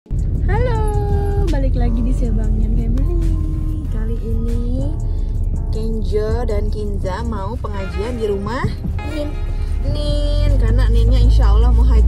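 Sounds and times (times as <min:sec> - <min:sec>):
car cabin low rumble: 0:00.1 - 0:12.0.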